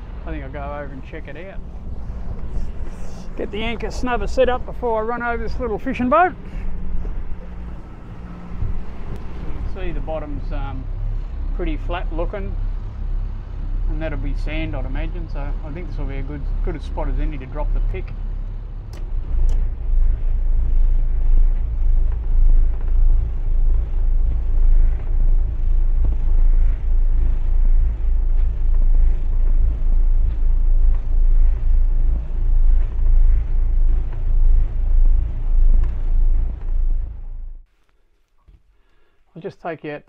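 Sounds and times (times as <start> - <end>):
boat engines rumbling: 0.0 - 37.7.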